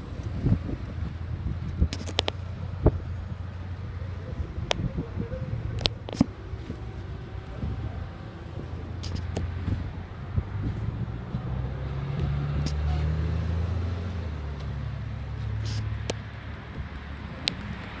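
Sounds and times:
car engine rumbling: 0.0 - 18.0.

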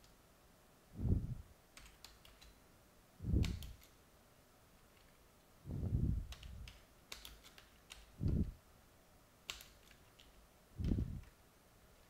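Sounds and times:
dull low thumps: 1.0 - 1.4, 3.2 - 3.5, 5.7 - 6.3, 8.2 - 8.6, 10.8 - 11.2
computer keyboard typing: 1.7 - 2.6, 6.3 - 8.1.

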